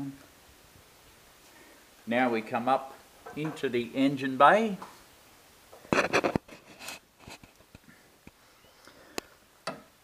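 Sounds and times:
handling rustling and scraping: 5.7s - 8.4s.

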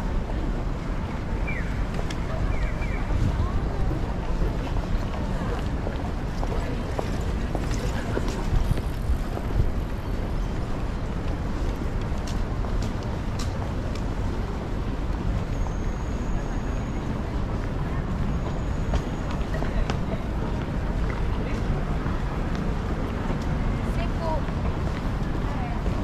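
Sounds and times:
indistinct voices of passers-by: 0.0s - 26.0s
low traffic rumble: 0.0s - 26.0s.

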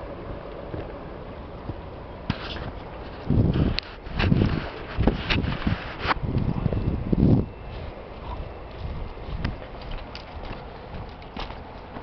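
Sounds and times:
footsteps on dry grass and sand: 2.3s - 12.0s.

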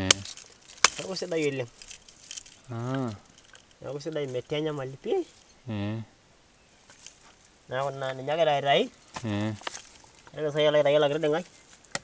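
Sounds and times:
faint metallic clicks and jingles: 0.0s - 5.7s, 6.7s - 12.0s
man speaking: 2.7s - 6.1s, 7.7s - 9.7s.

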